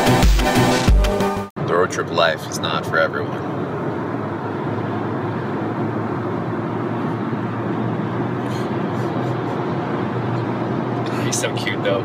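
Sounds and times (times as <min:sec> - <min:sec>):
car road noise in cabin: 0:01.6 - 0:12.0.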